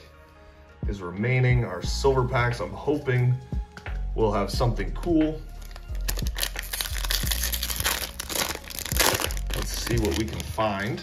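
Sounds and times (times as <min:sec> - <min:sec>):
foil wrapper crinkling and tearing: 0:05.6 - 0:11.0.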